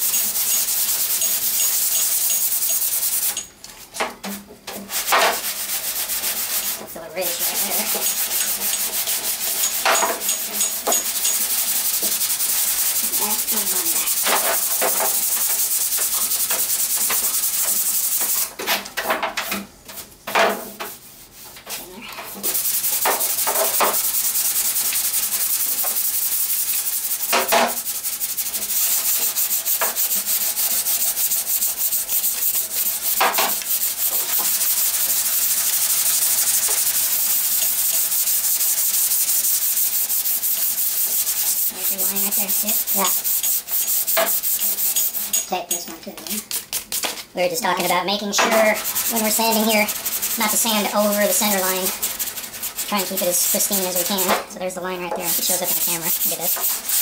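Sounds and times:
sandpaper sanding metal: 0:00.0 - 0:03.4, 0:04.9 - 0:18.5, 0:22.3 - 0:57.0.

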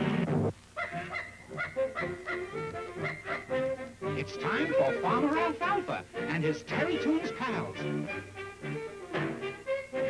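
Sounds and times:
cartoon theme music: 0:01.8 - 0:10.0.

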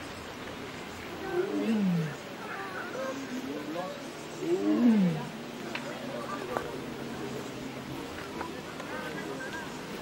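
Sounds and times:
tiger roaring: 0:01.2 - 0:02.2, 0:04.4 - 0:05.4.

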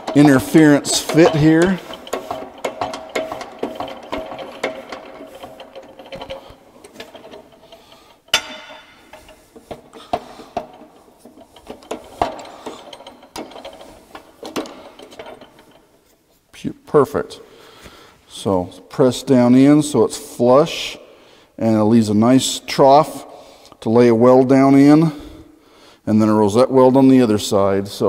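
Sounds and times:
steady mechanical tone: 0:00.0 - 0:16.1
hydraulic press clicking and ratcheting: 0:00.0 - 0:16.2.

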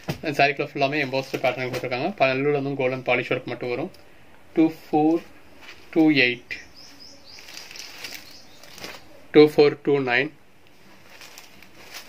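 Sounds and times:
fabric rustling: 0:05.0 - 0:06.2, 0:06.9 - 0:09.2, 0:10.7 - 0:12.0.

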